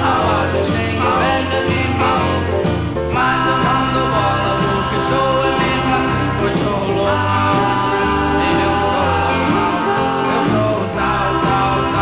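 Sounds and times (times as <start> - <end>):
rock and roll band music: 0.0 - 12.0.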